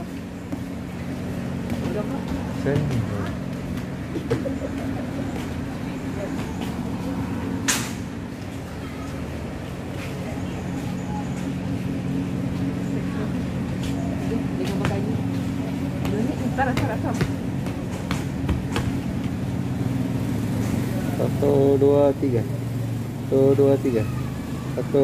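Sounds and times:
low mechanical hum: 0:00.0 - 0:25.0.

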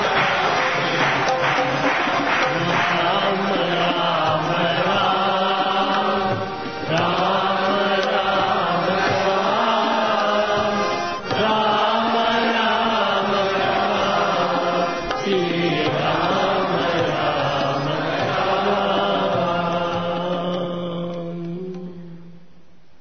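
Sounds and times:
devotional chanting: 0:00.0 - 0:22.8.

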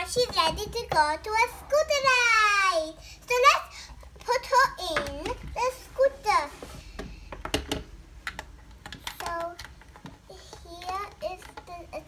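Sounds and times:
child's voice: 0:00.0 - 0:06.8, 0:09.0 - 0:09.7, 0:10.3 - 0:12.0
plastic toy clicks and taps: 0:07.0 - 0:12.0.

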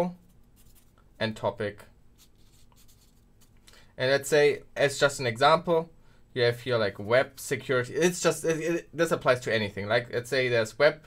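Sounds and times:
marker scratching on paper: 0:00.3 - 0:01.0, 0:02.2 - 0:03.6.

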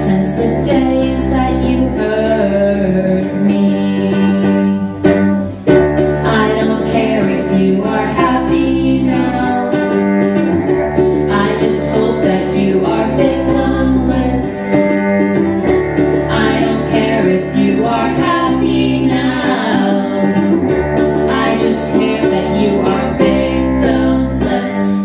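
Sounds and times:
bowed cello: 0:00.0 - 0:25.0
strummed ukulele: 0:00.0 - 0:25.0.

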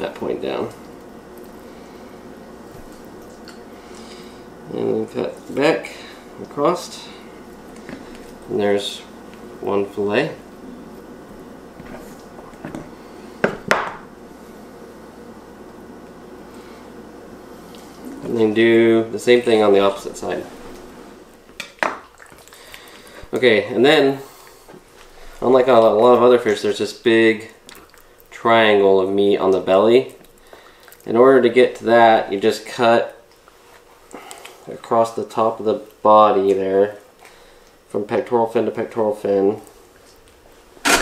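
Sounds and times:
faint room hiss: 0:00.0 - 0:41.0.

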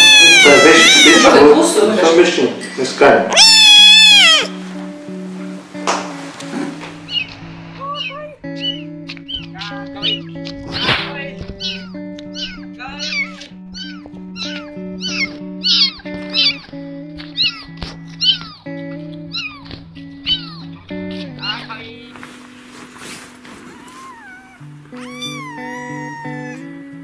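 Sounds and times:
kitten meowing: 0:00.0 - 0:01.6, 0:03.3 - 0:04.6, 0:07.1 - 0:10.9, 0:11.6 - 0:18.6, 0:19.3 - 0:20.7, 0:23.7 - 0:26.8
background music: 0:00.0 - 0:27.0.

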